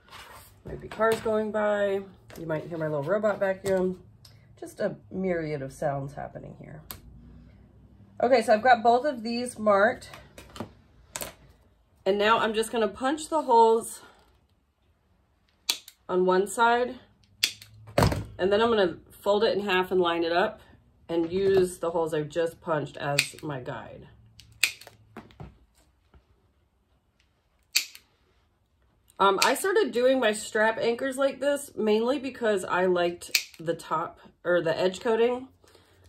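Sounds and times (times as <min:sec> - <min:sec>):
hole punch pliers clicking: 0:17.4 - 0:17.7, 0:27.7 - 0:28.0.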